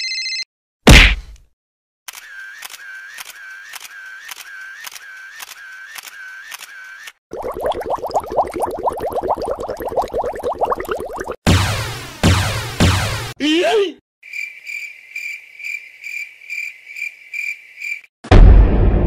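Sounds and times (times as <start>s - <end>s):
loud punch hit: 0.9s - 1.3s, 11.5s - 13.4s, 18.3s - 19.0s
camera shutter clicking: 2.1s - 6.8s
water bubbling: 7.3s - 11.4s.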